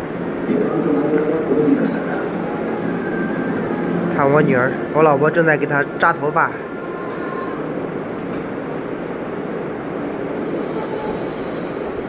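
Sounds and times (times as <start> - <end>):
faint murmured voices: 0.0 - 8.9
air cooler fan whooshing: 0.0 - 12.0.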